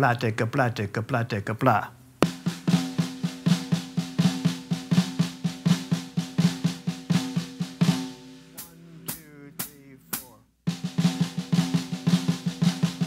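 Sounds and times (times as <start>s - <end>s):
snare drum triplets: 2.2s - 13.0s.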